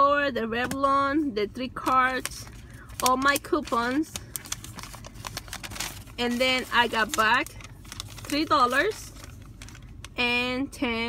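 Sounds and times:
paper receipt crinkling: 0:01.9 - 0:10.2.

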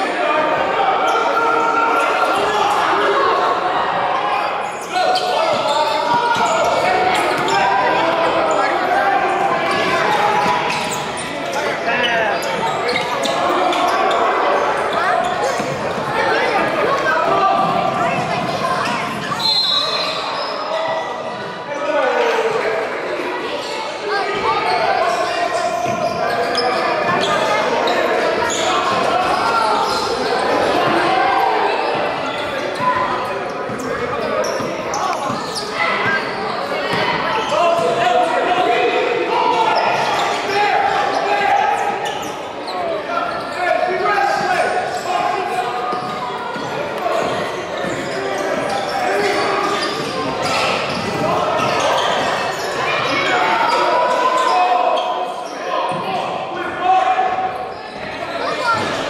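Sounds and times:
many voices talking: 0:00.0 - 0:59.0.

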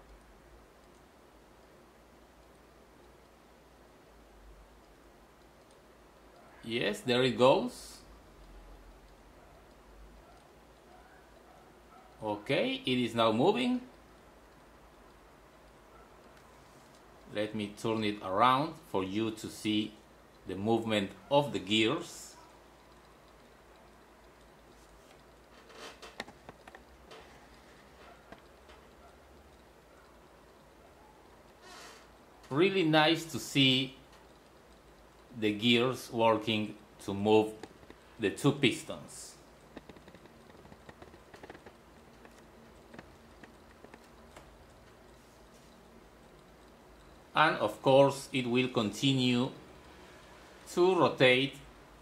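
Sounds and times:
faint clicks: 0:00.0 - 0:06.6, 0:08.0 - 0:12.3, 0:13.8 - 0:49.0
faint light ticking: 0:00.0 - 0:52.0.

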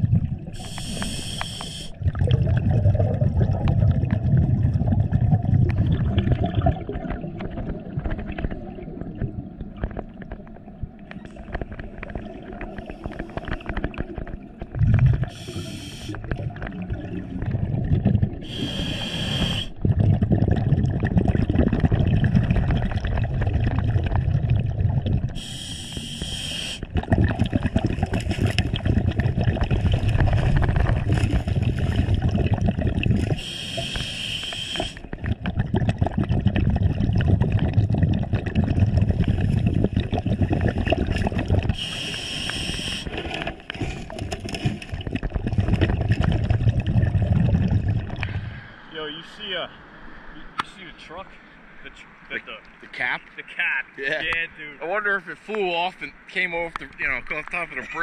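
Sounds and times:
bubbling exhaled air: 0:00.0 - 0:48.8
regulator inhalation hiss: 0:00.6 - 0:02.0, 0:15.3 - 0:16.2, 0:18.4 - 0:19.8, 0:25.4 - 0:26.9, 0:33.4 - 0:35.0, 0:41.8 - 0:43.2.

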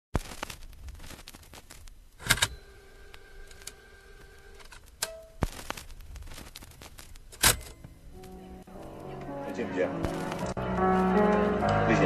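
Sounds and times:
vinyl crackle ticks: 0:00.2 - 0:09.4, 0:10.0 - 0:11.8
vinyl record pop: 0:00.2 - 0:12.0.

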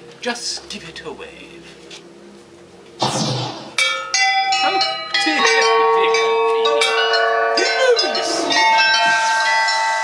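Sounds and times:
bells ringing in a jangle: 0:03.8 - 0:10.0.

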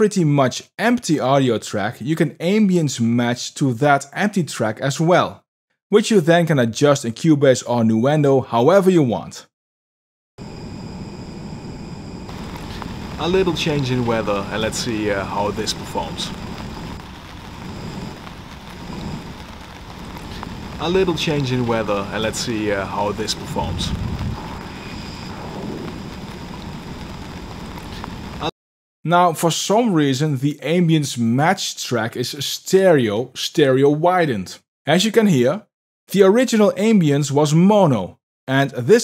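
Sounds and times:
low rumble: 0:10.4 - 0:28.5
steady hiss-like ambience: 0:12.3 - 0:28.5.

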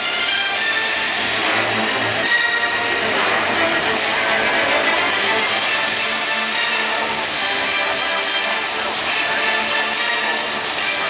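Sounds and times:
music over outdoor loudspeakers: 0:00.0 - 0:11.0.

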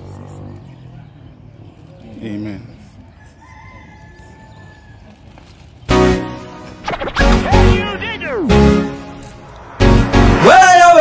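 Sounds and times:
rooster crowing faintly: 0:03.0 - 0:05.3.

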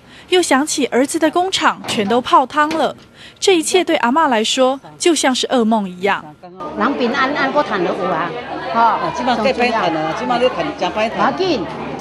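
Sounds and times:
women talking: 0:00.3 - 0:11.7.

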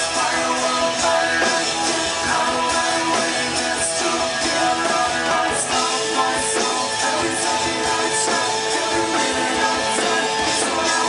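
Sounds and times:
drums: 0:00.0 - 0:11.0
electric guitar: 0:00.0 - 0:11.0
live rock band playing: 0:00.0 - 0:11.0.

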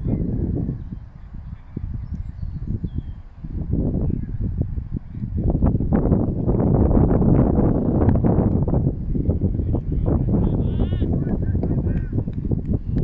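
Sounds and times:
wind blowing across microphone: 0:00.0 - 0:13.0.

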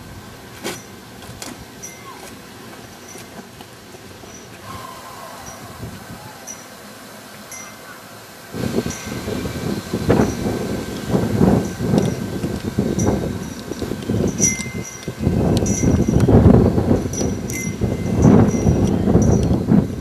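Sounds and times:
faint high tinkles: 0:01.8 - 0:02.3, 0:04.2 - 0:08.1, 0:13.0 - 0:19.6
wind buffeting microphone: 0:04.1 - 0:06.9, 0:08.4 - 0:20.0.

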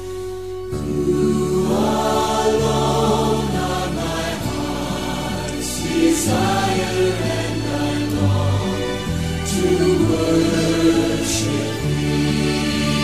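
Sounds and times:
choir singing worship music: 0:00.0 - 0:13.0.

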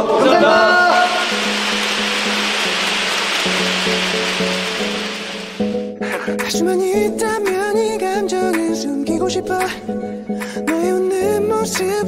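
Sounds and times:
audience applause: 0:00.0 - 0:05.8
soft background music: 0:00.8 - 0:12.0.

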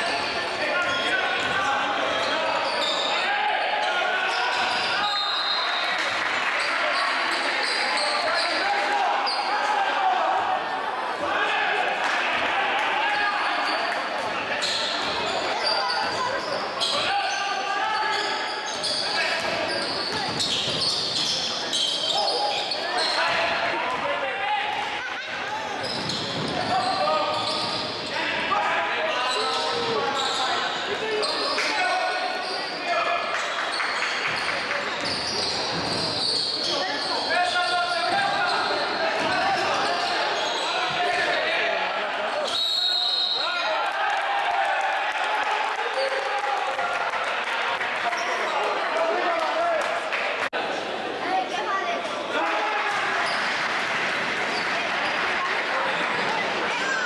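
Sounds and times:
voices of players and spectators: 0:00.0 - 0:57.0
basketball bouncing on court: 0:19.4 - 0:21.2.

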